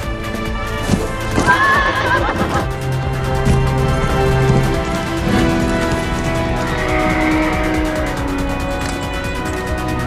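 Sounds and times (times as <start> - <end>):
music with held notes: 0.0 - 10.0
horse whinnying: 1.3 - 2.8.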